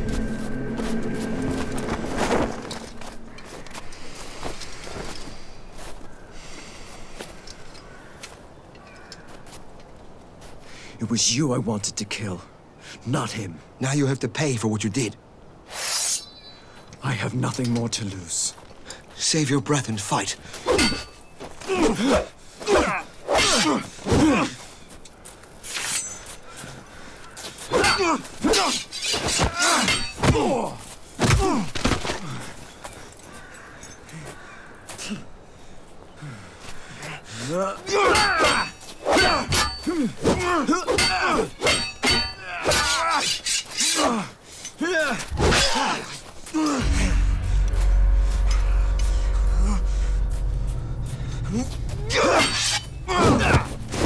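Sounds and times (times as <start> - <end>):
dramatic film score drone: 0.0 - 5.8, 46.6 - 54.0
swords clashing: 20.7 - 21.2, 27.7 - 30.6, 37.9 - 44.2, 52.0 - 53.7
men grunting and crying out: 20.7 - 24.6, 27.7 - 32.6, 37.1 - 54.0
sharp hits: 46.7 - 54.0.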